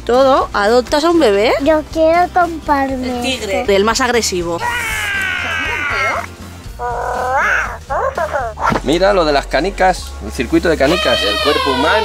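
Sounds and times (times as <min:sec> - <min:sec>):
short mewing calls: 0:04.6 - 0:08.7.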